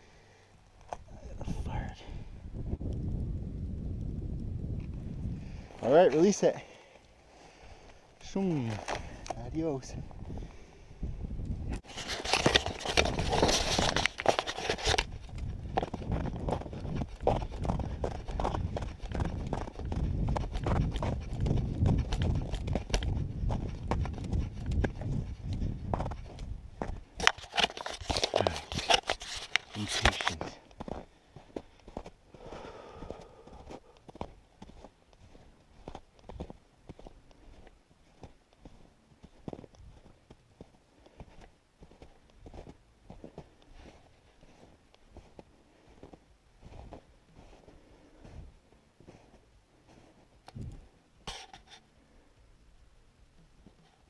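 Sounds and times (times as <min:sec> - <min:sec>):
footsteps crunching through snow: 0:11.8 - 0:50.2.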